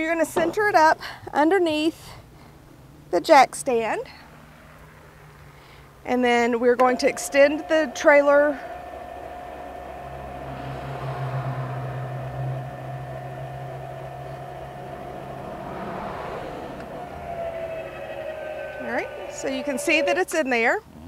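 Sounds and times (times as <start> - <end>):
electric jack motor whining: 6.7 - 20.6.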